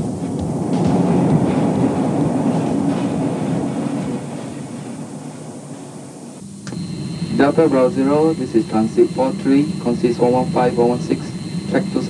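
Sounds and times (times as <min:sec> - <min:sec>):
metro train rumbling in tunnel: 0:00.0 - 0:12.0.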